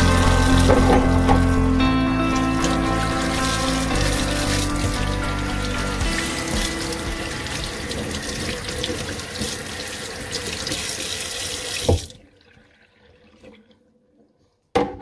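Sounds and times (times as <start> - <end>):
tap water splashing in sink: 6.5 - 12.2.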